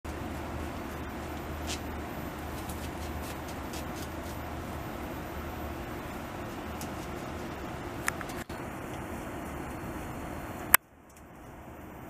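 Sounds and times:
beaver gnawing tree: 0.1 - 9.0
low background rumble: 0.1 - 12.0.

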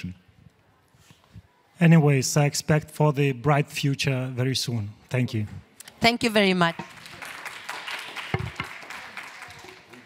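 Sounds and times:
audience applauding: 6.8 - 10.0.

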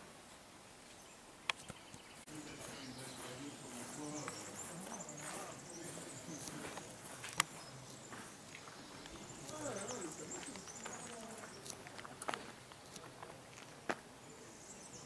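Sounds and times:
footsteps on gravel: 2.3 - 14.2
distant voices talking: 2.3 - 15.0.

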